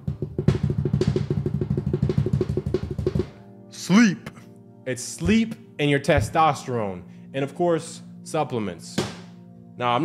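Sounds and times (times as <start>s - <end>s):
rapid drum roll: 0.0s - 3.3s.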